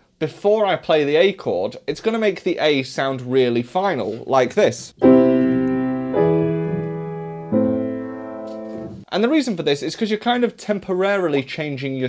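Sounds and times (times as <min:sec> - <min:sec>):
piano chords ringing: 0:05.0 - 0:09.0.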